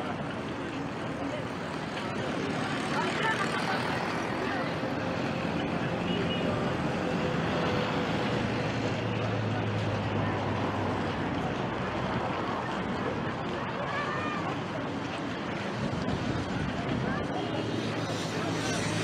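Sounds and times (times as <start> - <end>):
people's voices: 0.0 - 19.0
slow-moving traffic engines: 0.0 - 19.0.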